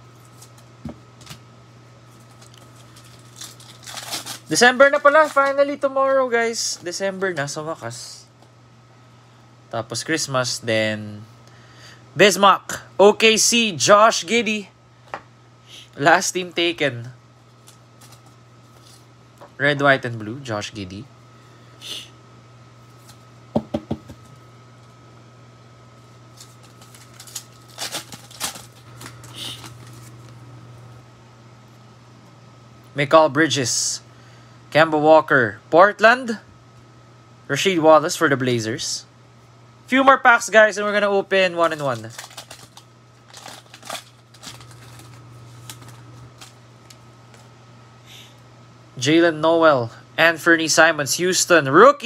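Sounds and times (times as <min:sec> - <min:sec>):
steady low hum: 0:00.0 - 0:52.0
foil pack crinkling and tearing: 0:00.1 - 0:01.4, 0:02.1 - 0:05.8, 0:17.5 - 0:19.0, 0:26.3 - 0:30.3, 0:41.5 - 0:47.5.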